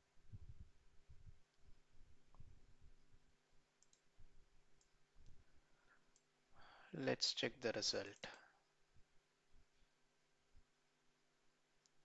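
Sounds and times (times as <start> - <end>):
computer mouse clicks: 3.8 - 4.1
person speaking: 6.8 - 8.6.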